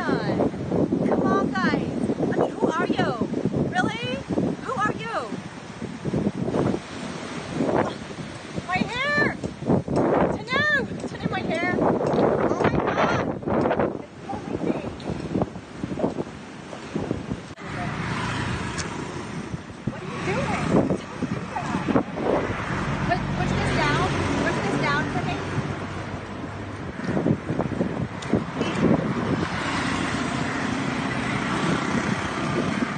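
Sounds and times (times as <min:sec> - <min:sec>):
wind buffeting microphone: 0:00.0 - 0:32.9.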